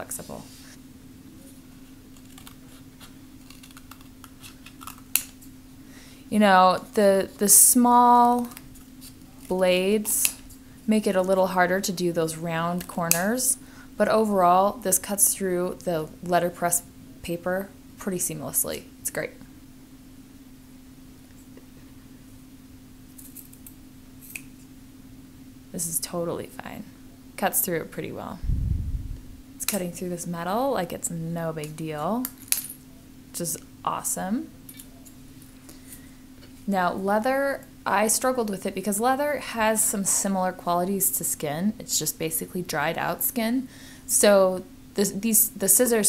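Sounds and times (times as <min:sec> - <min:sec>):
steady low hum: 0:00.0 - 0:46.0
scissors snipping paper: 0:02.2 - 0:05.3.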